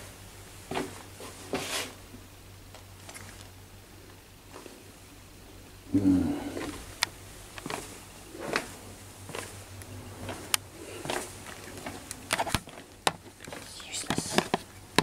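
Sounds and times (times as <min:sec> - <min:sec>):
footsteps on hard floor: 0:10.2 - 0:12.9.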